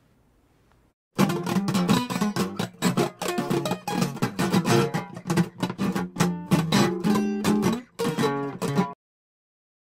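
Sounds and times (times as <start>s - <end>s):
acoustic guitar strumming: 1.2s - 9.0s.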